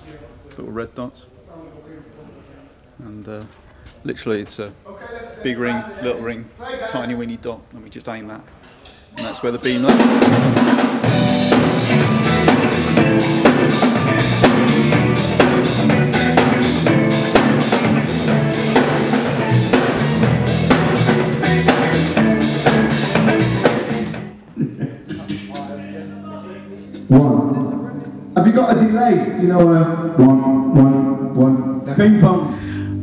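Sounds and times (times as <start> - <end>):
band playing: 9.2 - 24.5
drum kit steady beat: 9.2 - 25.8
loud drum hit: 9.7 - 24.2.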